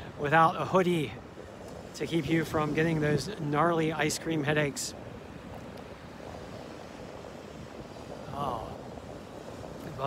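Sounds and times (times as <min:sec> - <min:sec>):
waves breaking on a beach: 0:00.0 - 0:10.0.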